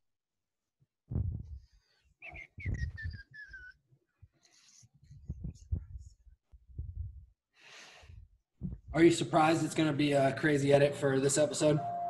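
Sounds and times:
low thumps: 1.1 - 1.6, 6.7 - 7.2, 8.6 - 9.0
falling whistle-like tone: 11.4 - 12.0.

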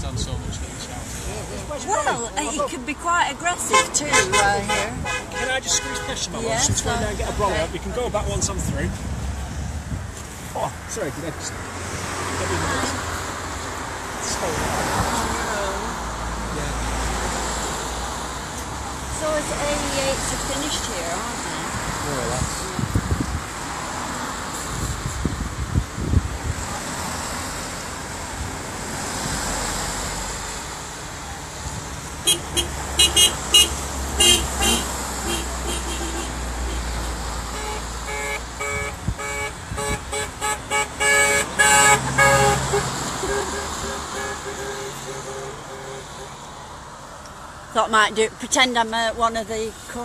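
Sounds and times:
road traffic passing: 0.0 - 50.0
car horn toots: 3.7 - 6.3, 32.2 - 36.8, 37.5 - 46.4.

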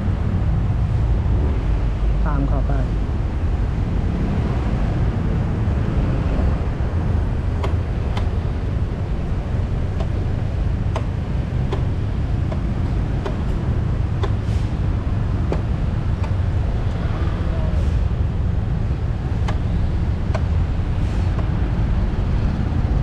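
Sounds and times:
wind on microphone: 2.9 - 23.0.

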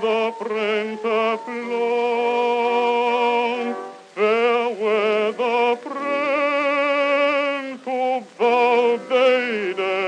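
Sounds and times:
solo voice singing with vibrato: 0.0 - 10.0.

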